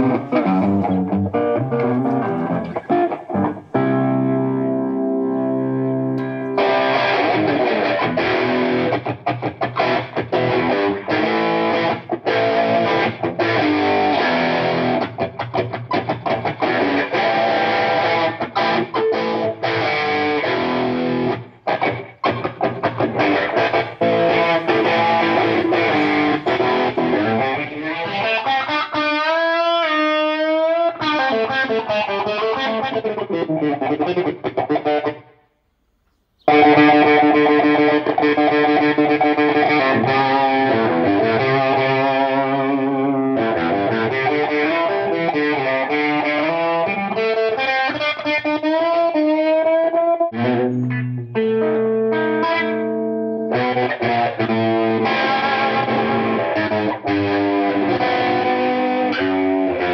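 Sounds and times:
distorted electric guitar: 0.0s - 35.4s, 36.4s - 59.9s.

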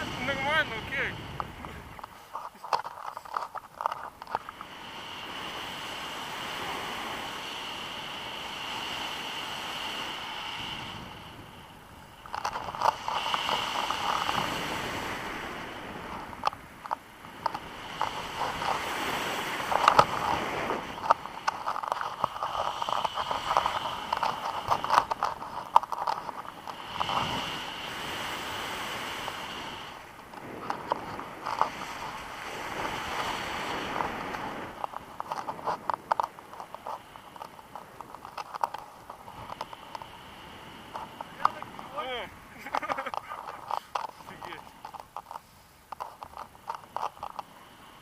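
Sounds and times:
wind rushing over microphone: 0.0s - 45.4s
crackle of wind buffeting mic: 0.0s - 48.0s.

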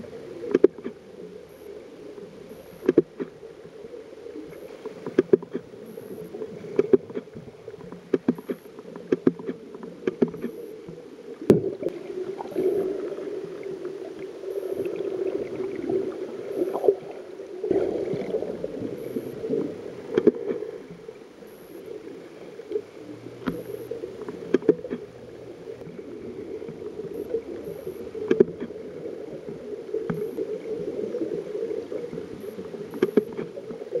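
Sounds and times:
muffled underwater water movement: 0.0s - 34.0s
faint clicks: 4.4s - 11.6s, 20.0s - 21.9s, 22.7s - 25.9s, 26.6s - 28.8s, 29.9s - 30.4s, 32.1s - 33.8s.

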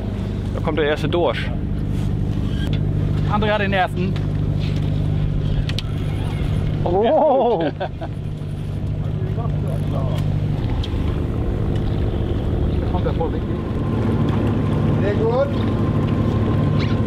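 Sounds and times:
boat engine droning: 0.0s - 17.0s.

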